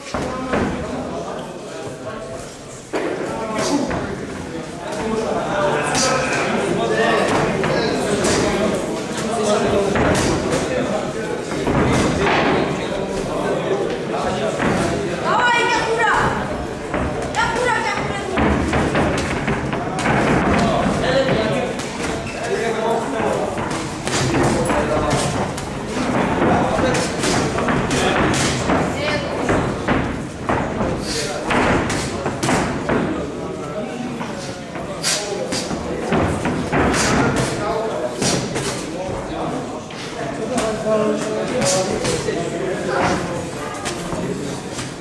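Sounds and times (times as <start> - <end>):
voices around the ring: 0.0 - 45.0.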